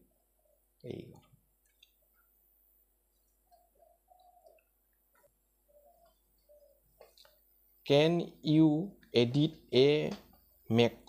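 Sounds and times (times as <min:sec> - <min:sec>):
low voice: 0:00.8 - 0:01.2.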